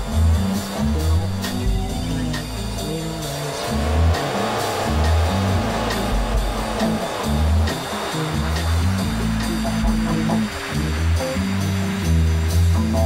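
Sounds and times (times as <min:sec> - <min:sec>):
bass guitar: 0:00.0 - 0:13.0
drum kit with cymbal hits: 0:00.0 - 0:13.0
swooping theremin tones: 0:00.0 - 0:13.0.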